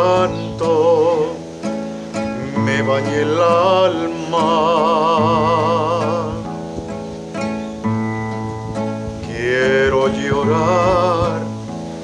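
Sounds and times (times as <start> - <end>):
acoustic guitar playing: 0.0 - 12.0
wordless sung note: 2.3 - 6.5.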